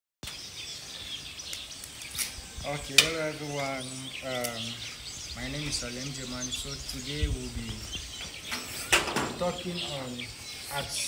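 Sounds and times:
birds chirping: 0.2s - 11.0s.

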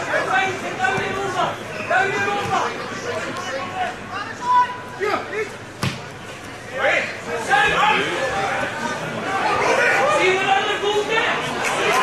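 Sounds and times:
players and spectators shouting: 0.0s - 5.7s, 6.6s - 12.0s.

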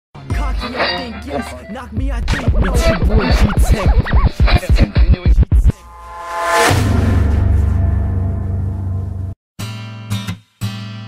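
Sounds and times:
scratched vocal sample: 0.3s - 6.0s.

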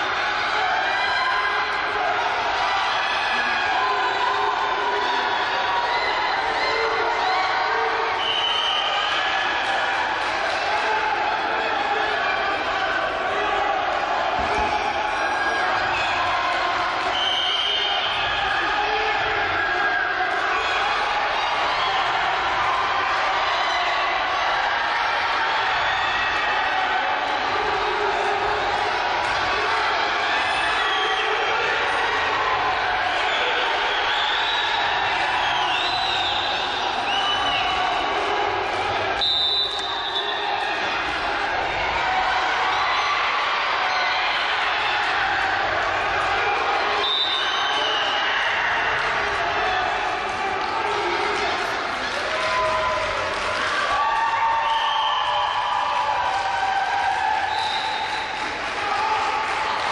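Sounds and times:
crowd voices and shouts: 0.0s - 59.9s.

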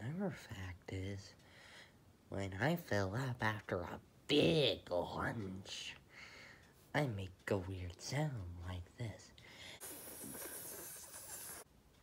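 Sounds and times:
person hissing: 9.8s - 11.7s.

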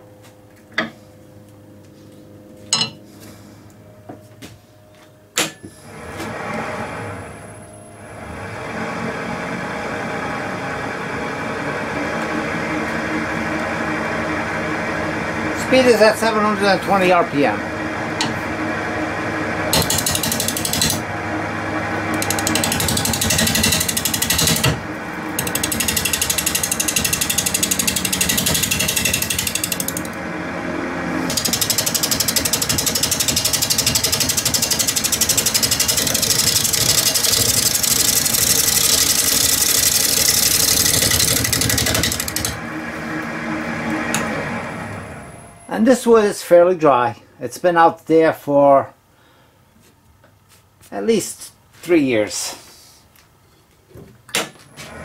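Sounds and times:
wood lathe spinning: 5.8s - 46.1s
turning tool rattling on wood: 19.7s - 21.0s, 22.2s - 24.8s, 25.4s - 30.1s, 31.3s - 42.6s.

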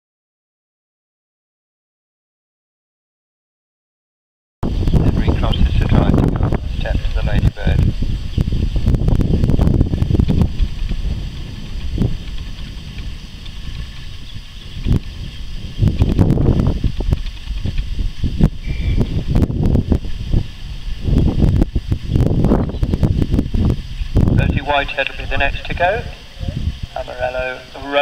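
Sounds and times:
wind buffeting microphone: 4.6s - 28.0s.

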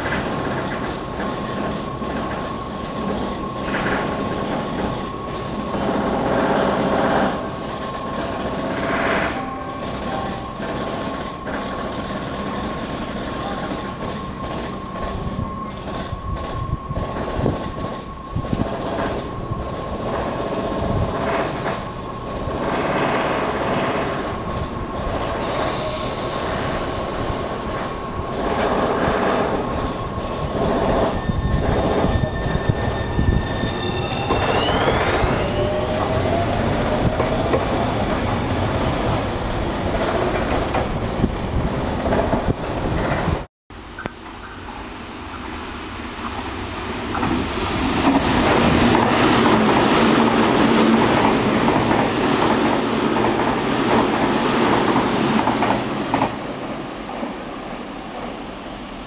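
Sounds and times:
electric train running: 0.0s - 43.5s
train motor tones rising: 30.5s - 40.7s.

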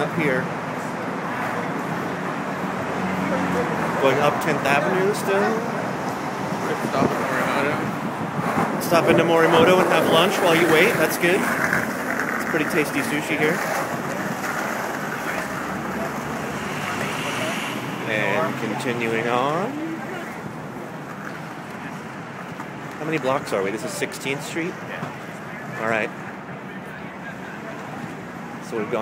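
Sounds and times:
indistinct voices: 0.0s - 20.9s
traffic hum: 0.0s - 29.0s
wind on microphone: 5.8s - 12.4s.

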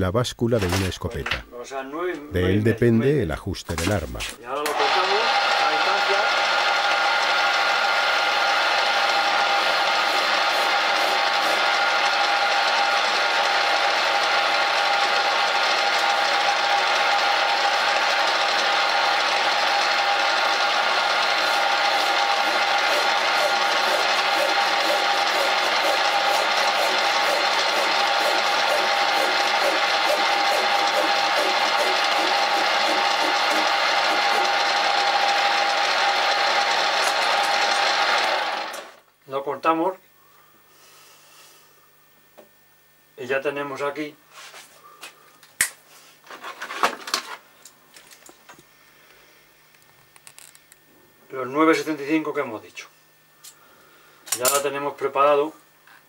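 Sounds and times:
metal lathe whining: 4.7s - 39.0s.

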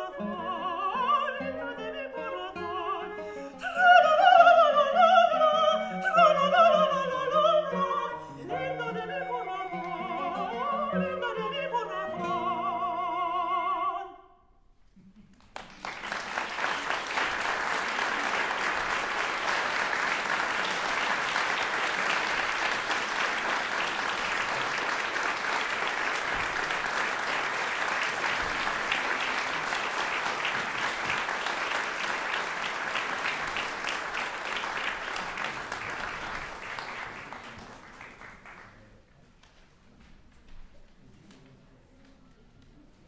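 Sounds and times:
audience applauding: 15.3s - 39.0s.

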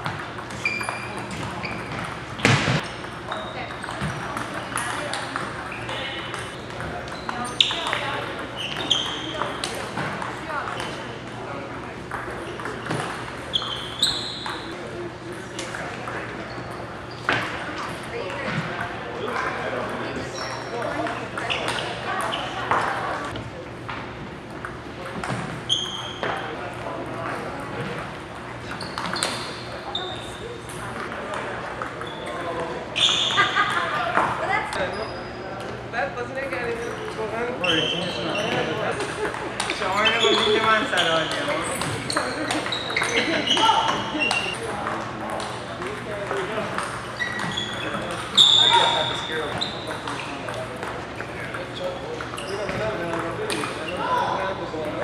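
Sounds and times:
background chatter: 0.0s - 55.0s
murmur of voices: 0.0s - 55.0s
short high squeaks: 0.6s - 2.0s, 8.6s - 9.4s, 13.5s - 14.7s, 33.0s - 33.6s, 40.0s - 44.7s, 46.8s - 50.3s.

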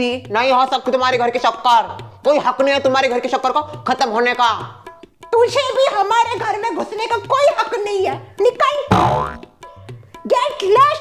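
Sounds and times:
background music with drum beat: 0.0s - 11.0s.

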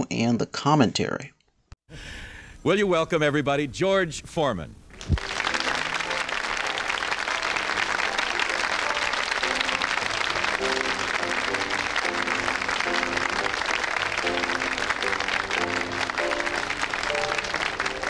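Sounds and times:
audience applauding: 5.0s - 18.0s
music tune: 5.2s - 18.0s.

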